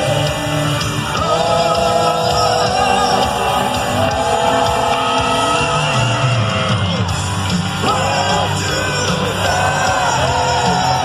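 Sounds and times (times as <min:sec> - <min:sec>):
live heavy metal band: 0:00.0 - 0:11.0
loud singing: 0:00.0 - 0:11.0.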